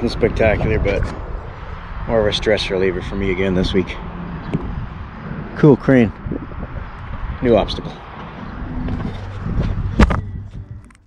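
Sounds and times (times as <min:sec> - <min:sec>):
camera handling rumbling and rustling: 0:08.0 - 0:11.0.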